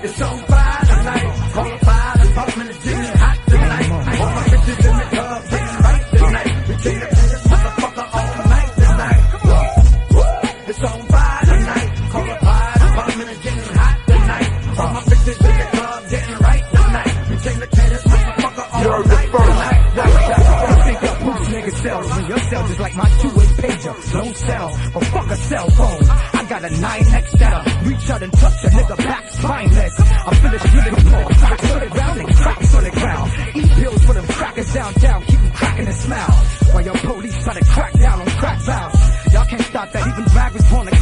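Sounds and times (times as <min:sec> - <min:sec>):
person rapping: 0:00.0 - 0:41.0
heavy bass drum beat: 0:00.2 - 0:10.5, 0:11.1 - 0:24.2, 0:25.0 - 0:41.0.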